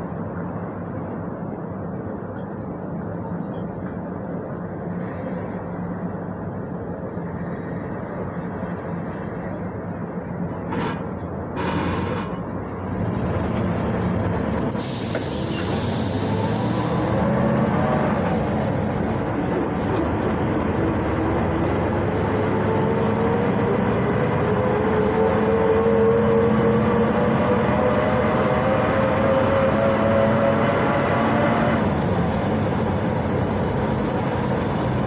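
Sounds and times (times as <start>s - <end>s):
bus engine running: 0.0s - 35.0s
hiss of compressed air: 14.7s - 17.3s.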